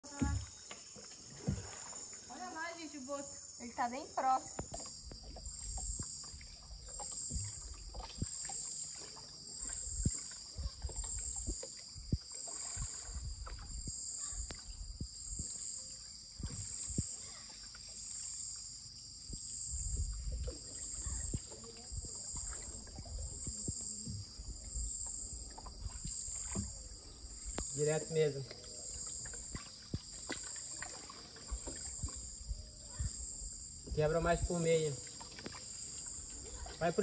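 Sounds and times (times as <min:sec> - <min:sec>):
paddle knocking against hull: 0:00.0 - 0:02.0, 0:04.5 - 0:14.6, 0:19.9 - 0:27.7, 0:33.8 - 0:34.2
paddle strokes: 0:00.0 - 0:03.1, 0:04.2 - 0:18.7, 0:19.4 - 0:37.0
insect chorus: 0:00.0 - 0:37.0
water lapping: 0:00.0 - 0:37.0.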